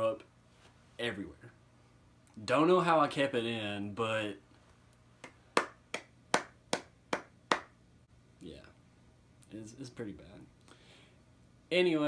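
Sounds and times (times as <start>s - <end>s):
person clapping hands: 5.2s - 7.8s.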